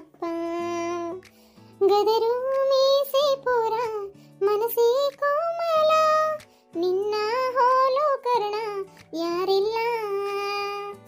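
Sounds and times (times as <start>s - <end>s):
high-pitched voice singing: 1.8s - 11.0s.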